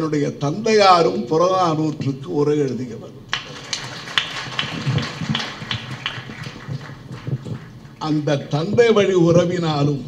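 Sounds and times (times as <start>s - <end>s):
audience applauding: 3.3s - 8.5s.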